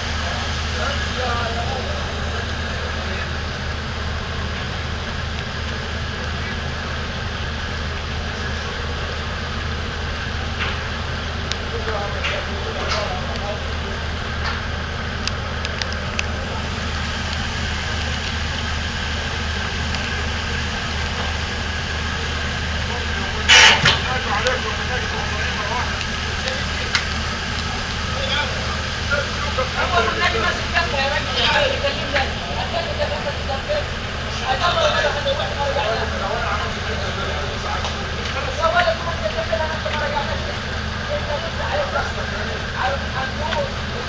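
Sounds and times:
ship engines humming: 0.0 - 44.0
crew voices calling: 15.2 - 44.0
short loud burst: 23.5 - 24.1.

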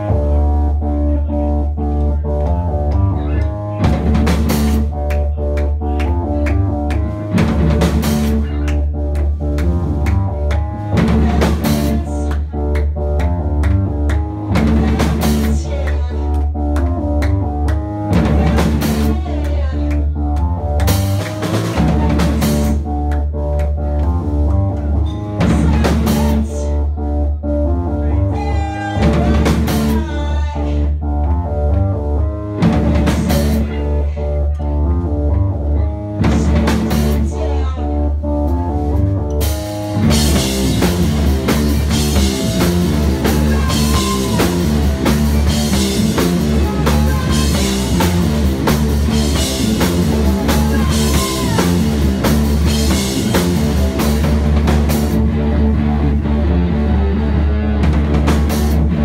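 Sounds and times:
drum kit: 0.0 - 27.8, 28.4 - 59.0
electric bass: 0.0 - 59.0
synthesizer: 0.0 - 59.0.

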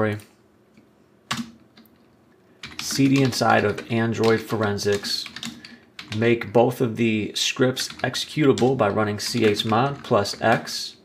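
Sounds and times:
keyboard keystrokes: 1.3 - 6.2.

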